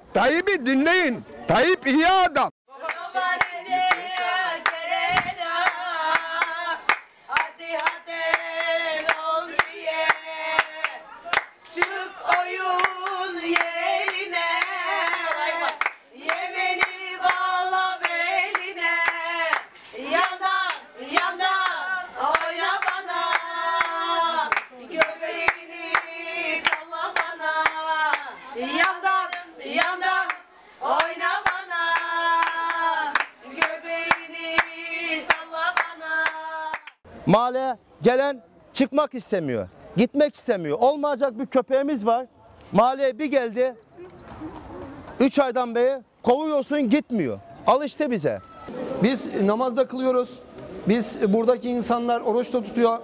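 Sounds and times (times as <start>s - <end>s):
high voice singing folk song: 2.7s - 36.9s
rhythmic hand-clapping: 2.8s - 37.0s.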